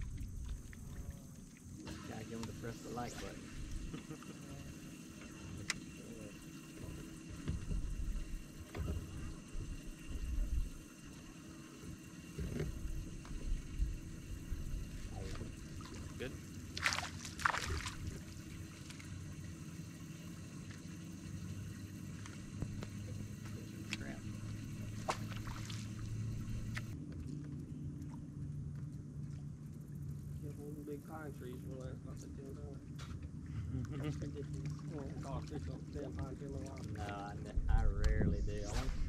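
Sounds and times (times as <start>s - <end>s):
water lapping: 0.0s - 37.6s
wind rumble: 37.5s - 39.0s.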